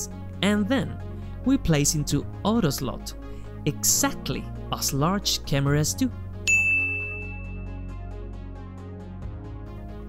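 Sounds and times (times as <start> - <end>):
soft background music: 0.0 - 10.0
bright confirmation ding: 6.5 - 7.7.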